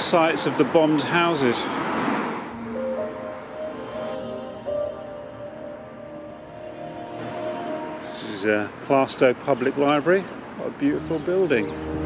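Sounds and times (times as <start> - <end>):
ambient music with held notes: 2.4 - 8.9, 10.7 - 12.0.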